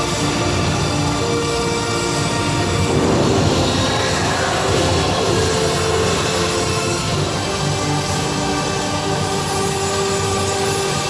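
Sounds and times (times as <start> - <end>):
steady rumbling noise: 0.0 - 11.0.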